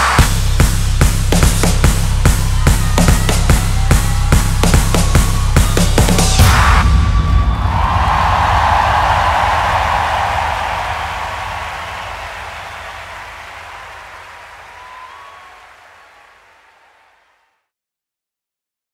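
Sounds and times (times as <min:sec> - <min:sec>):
concert audience cheering and applauding: 0:00.0 - 0:17.4.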